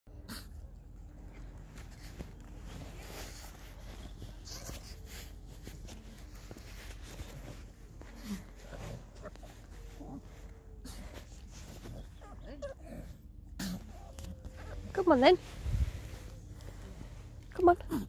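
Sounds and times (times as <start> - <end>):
steady low rumble: 0.1 - 18.0
dog breathing and snuffling: 0.2 - 18.0.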